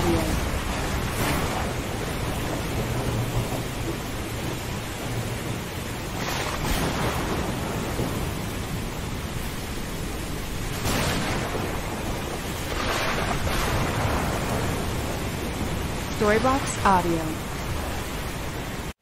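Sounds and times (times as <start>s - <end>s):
low thunder rumble: 0.0s - 18.9s
wind rain and surf rushing: 0.0s - 19.0s.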